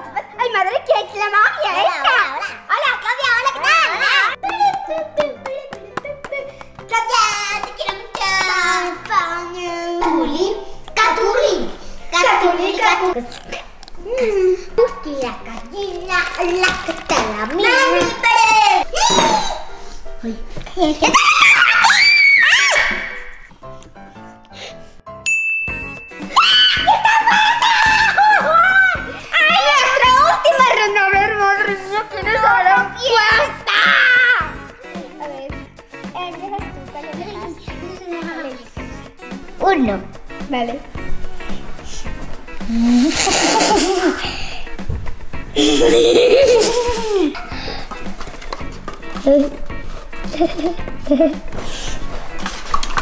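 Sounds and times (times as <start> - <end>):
background music: 0.0 - 53.0
girls screaming and squealing: 18.2 - 19.8, 21.0 - 23.5, 26.2 - 30.3, 33.6 - 34.6
electronic ding: 25.3 - 26.2
girls laughing: 26.4 - 29.0, 42.7 - 44.3, 45.6 - 47.5, 50.2 - 51.5.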